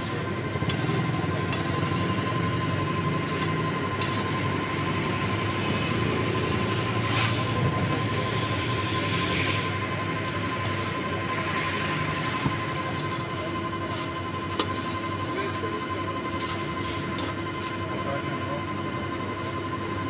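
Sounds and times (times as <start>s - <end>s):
stirring machine rumble and whine: 0.0s - 20.0s.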